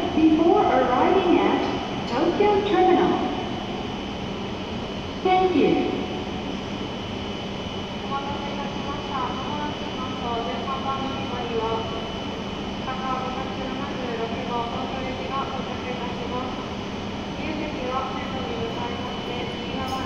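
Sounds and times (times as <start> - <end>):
constant high whine: 0.0 - 20.0
train humming and whirring: 0.0 - 20.0.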